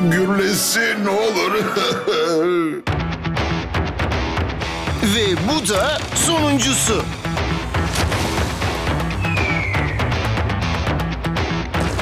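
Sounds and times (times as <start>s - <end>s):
cartoon falling whistle: 9.2s - 10.2s.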